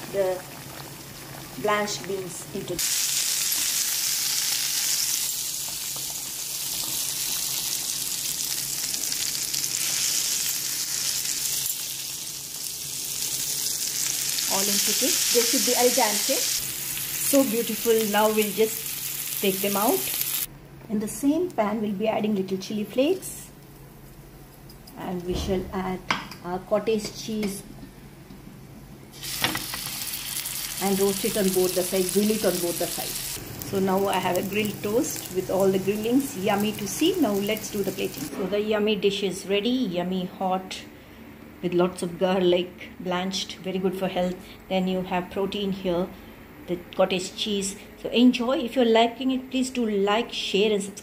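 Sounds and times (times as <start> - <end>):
green beans sizzling in oil: 0.0 - 20.5, 29.1 - 38.3.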